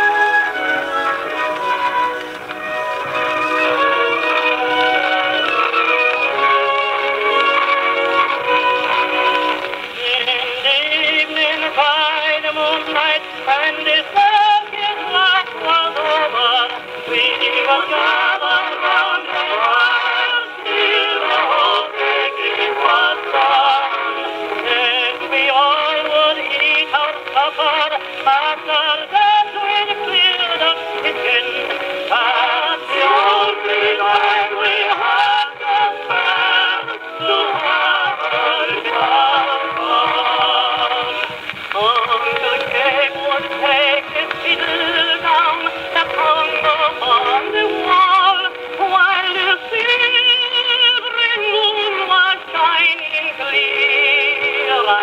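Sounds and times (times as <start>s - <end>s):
tinny phonograph vocal record: 0.0s - 55.0s.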